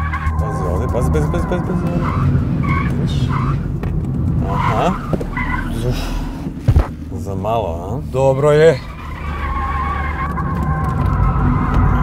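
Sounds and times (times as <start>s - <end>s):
tyres squealing: 0.0s - 7.0s, 8.2s - 12.0s
engine and road rumble: 0.0s - 12.0s.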